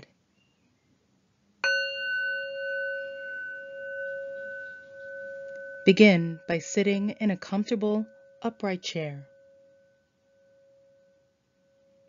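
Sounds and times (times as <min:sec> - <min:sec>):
singing bowl ringing: 0:01.6 - 0:12.0.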